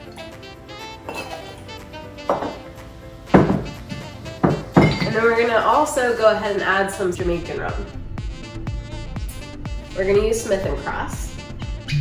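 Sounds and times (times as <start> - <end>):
background music: 0.0 - 12.0
bottles clinking on wooden bar: 1.1 - 1.6, 2.3 - 2.7, 3.4 - 5.3.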